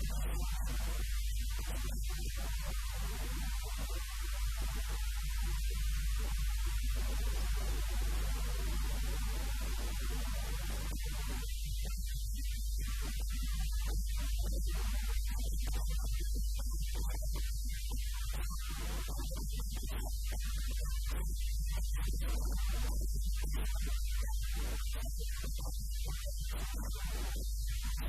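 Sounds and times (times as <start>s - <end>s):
electrical mains hum: 0.0s - 17.7s.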